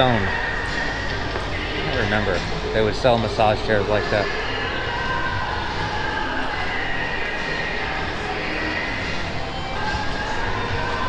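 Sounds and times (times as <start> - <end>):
faint background music: 0.0 - 11.0
low rumble and hum of hall: 0.0 - 11.0.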